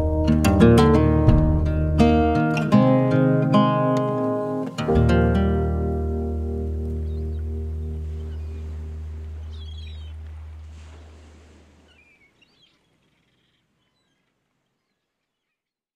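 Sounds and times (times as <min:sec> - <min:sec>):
acoustic guitar chord ringing: 0:00.0 - 0:10.4
faint bird chirps: 0:07.0 - 0:15.9.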